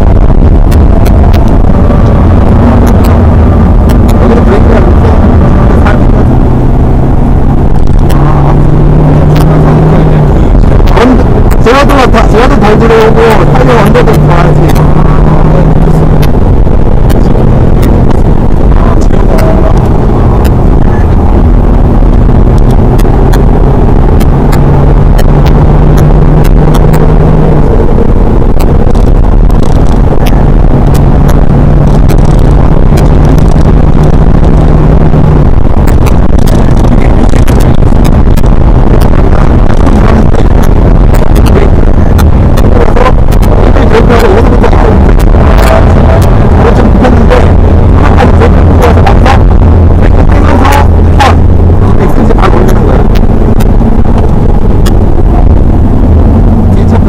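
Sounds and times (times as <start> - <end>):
car engine from inside cabin: 0.0 - 57.0
loud road noise: 0.0 - 57.0.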